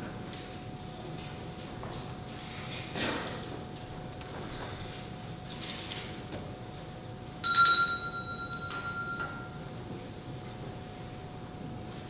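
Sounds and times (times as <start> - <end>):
small metal bell ringing: 7.4 - 9.6.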